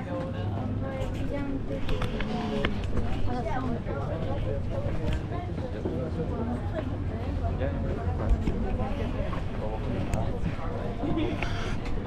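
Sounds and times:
crowd chatting: 0.0s - 12.0s.

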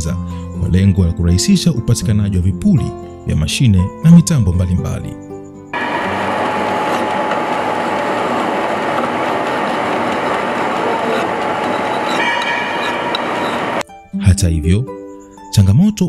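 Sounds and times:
metalworking machinery din: 5.8s - 13.8s.

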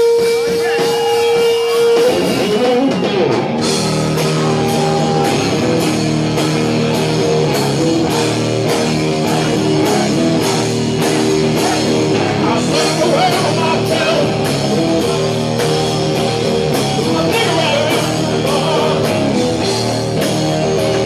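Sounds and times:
drum kit beat: 0.0s - 21.0s
electric guitar riff: 0.0s - 21.0s.

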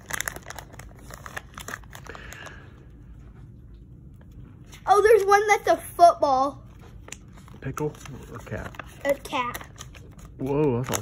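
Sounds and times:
plastic package crinkling: 0.0s - 2.6s, 7.0s - 11.0s.

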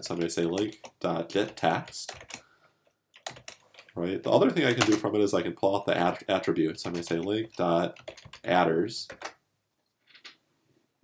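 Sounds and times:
computer keyboard keystrokes: 0.6s - 2.4s, 3.2s - 3.9s, 6.8s - 8.5s, 9.1s - 9.4s.

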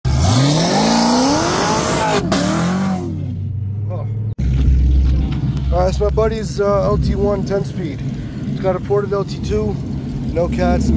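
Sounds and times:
cars passing at full throttle: 0.1s - 10.9s
low steady engine drone: 3.5s - 10.9s.

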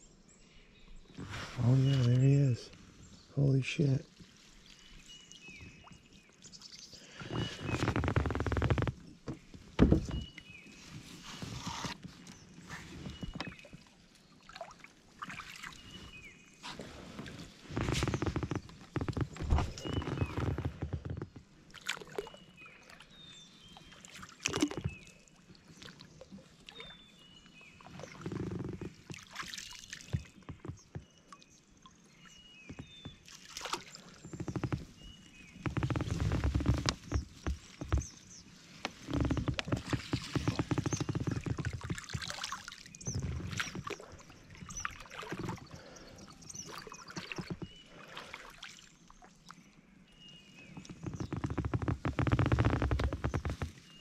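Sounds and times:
water splashing and sloshing: 1.1s - 54.0s.

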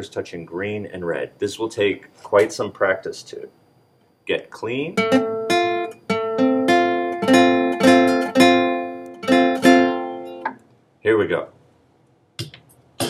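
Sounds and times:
classical guitar plucked chord: 5.0s - 10.5s.

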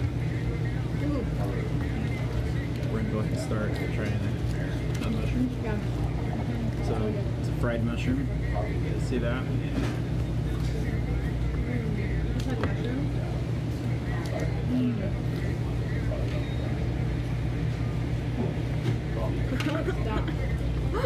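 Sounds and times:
faint background voices: 0.0s - 21.0s
ventilation hum: 0.0s - 21.0s.

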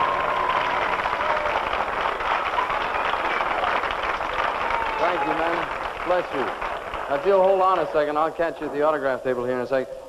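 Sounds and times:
audience applauding: 0.0s - 9.2s.

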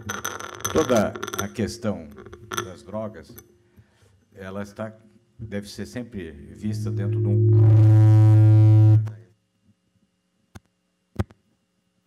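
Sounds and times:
loud low buzz from speakers: 4.8s - 9.4s.

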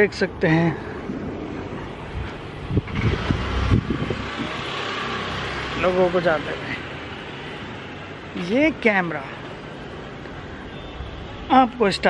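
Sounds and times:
vehicle passing: 0.9s - 10.6s.

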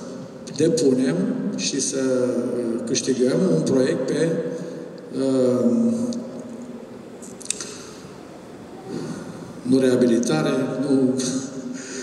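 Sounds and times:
mouth click: 7.2s - 7.8s.

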